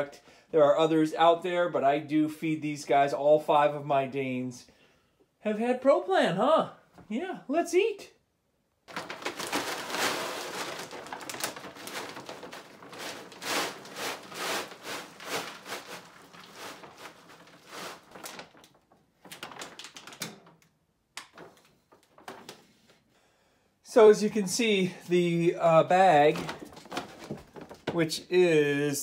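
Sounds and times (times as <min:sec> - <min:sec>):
dry kibble pouring into container: 0:08.9 - 0:18.7.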